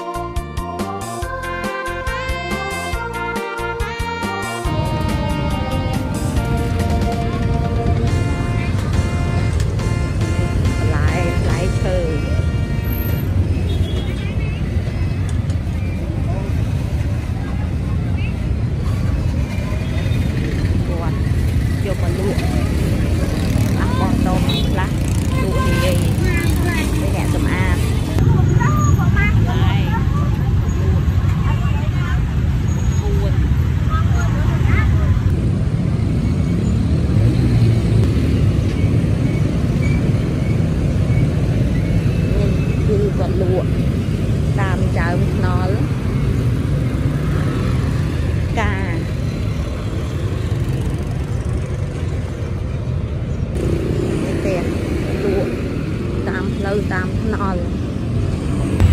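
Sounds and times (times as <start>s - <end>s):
road traffic rumble: 0.0s - 58.9s
people talking: 10.6s - 12.4s, 20.8s - 32.3s, 33.1s - 35.3s, 42.3s - 43.8s, 44.6s - 45.9s, 48.6s - 49.1s, 54.2s - 55.6s, 56.2s - 57.8s.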